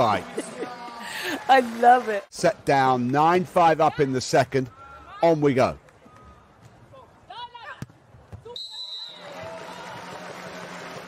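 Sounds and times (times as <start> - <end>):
crowd noise: 0.0 - 11.0
high whistle: 8.5 - 9.4.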